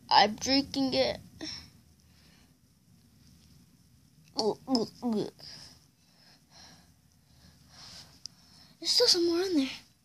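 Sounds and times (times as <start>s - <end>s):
faint breathing: 1.4s - 2.7s, 5.4s - 8.8s.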